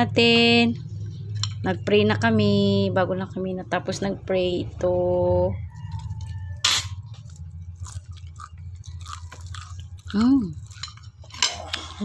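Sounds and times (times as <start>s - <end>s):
low hum: 0.0s - 12.0s
person chewing crunchy food: 5.8s - 12.0s.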